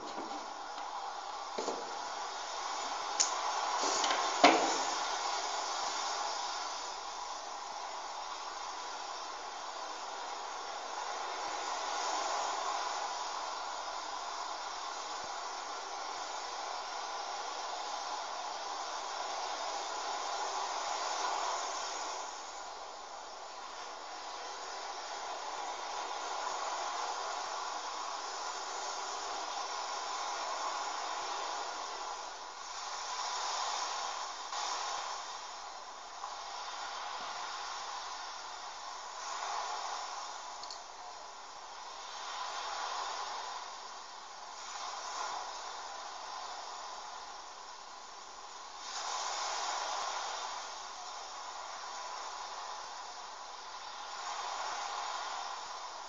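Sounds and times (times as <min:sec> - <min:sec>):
background hiss: 0:00.0 - 0:56.0.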